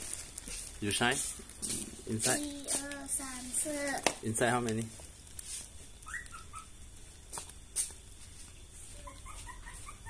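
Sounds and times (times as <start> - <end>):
puppy whimpering: 6.1 - 6.7, 9.0 - 10.0.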